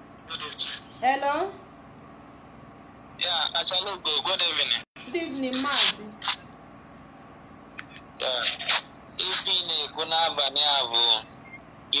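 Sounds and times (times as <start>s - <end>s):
person talking: 5.1s - 6.2s.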